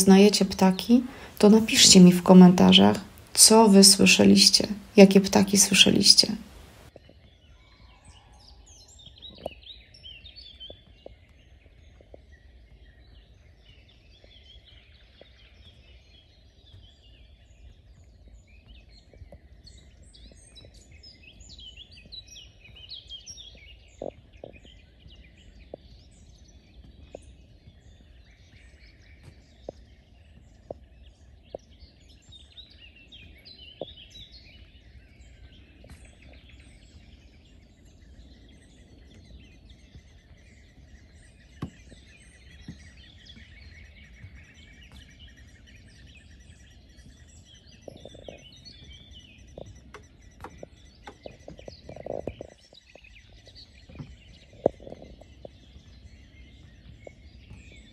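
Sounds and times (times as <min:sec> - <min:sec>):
songbirds singing and chirping: 0:00.0 - 0:57.9.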